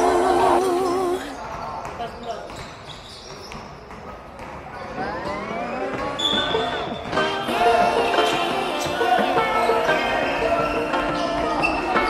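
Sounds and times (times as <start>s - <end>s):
players calling out: 0.0s - 1.4s, 5.0s - 12.0s
brief high squeak: 6.2s - 6.9s.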